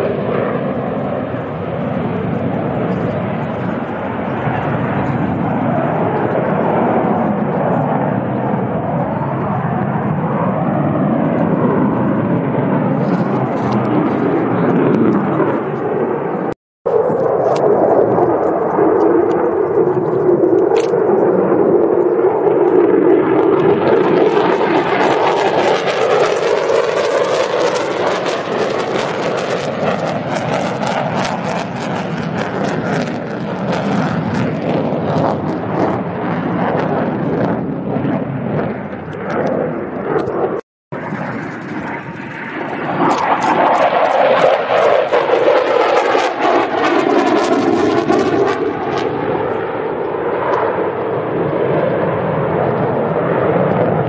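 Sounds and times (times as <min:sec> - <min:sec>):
fighter jet engine roar: 0:00.0 - 0:54.0.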